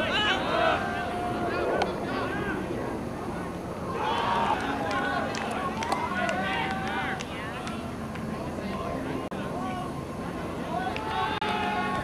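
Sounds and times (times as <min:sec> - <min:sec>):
players shouting: 0:00.0 - 0:02.7, 0:03.9 - 0:07.8, 0:10.6 - 0:12.0.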